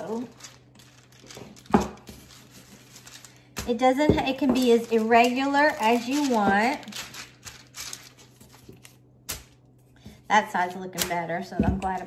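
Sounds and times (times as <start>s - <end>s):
faint paper rustling: 0.0s - 9.0s.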